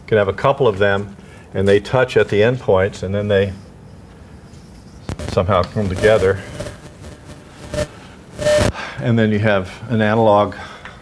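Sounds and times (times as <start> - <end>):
person speaking: 5.2 - 6.8
sharp intake of breath: 7.6 - 9.0.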